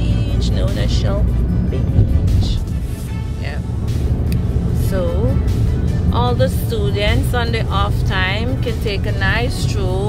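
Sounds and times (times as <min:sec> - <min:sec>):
road and wind rumble: 0:00.0 - 0:10.0.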